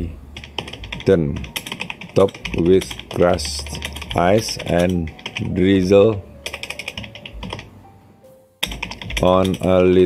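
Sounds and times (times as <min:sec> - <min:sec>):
keyboard typing: 0:00.4 - 0:07.7, 0:08.6 - 0:10.0.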